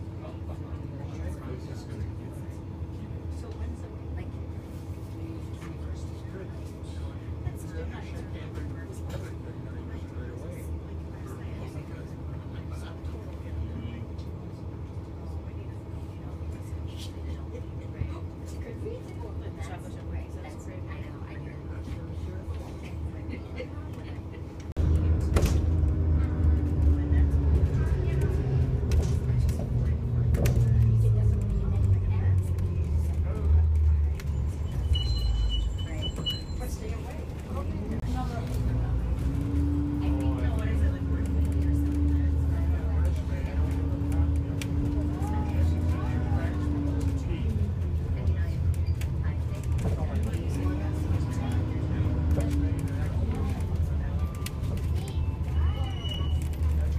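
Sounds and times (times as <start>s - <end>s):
train wheels rumbling on rail: 23.8s - 56.9s.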